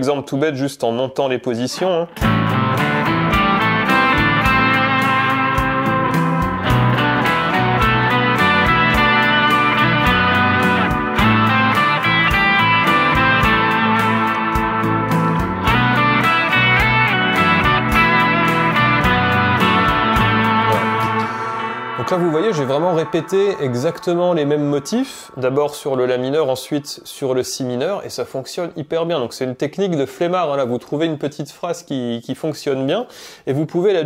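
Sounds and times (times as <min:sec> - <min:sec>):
electric guitar lead: 0:01.7 - 0:27.2
looped backing track with beat: 0:01.7 - 0:27.9.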